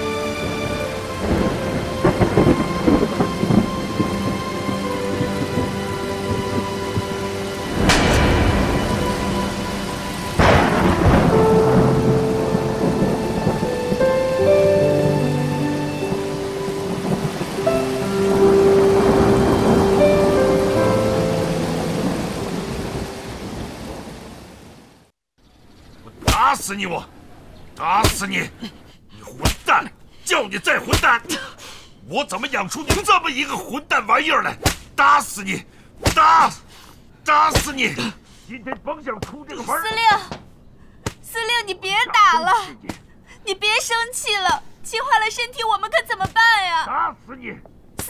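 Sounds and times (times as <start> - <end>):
slow music score: 0.0 - 23.9
steady rain: 0.0 - 25.2, 26.4 - 46.8
thunder cracks: 1.2 - 24.6.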